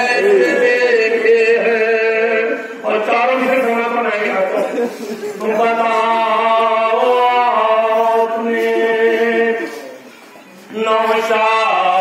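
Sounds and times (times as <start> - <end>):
men chanting a lament: 0.0 - 12.0.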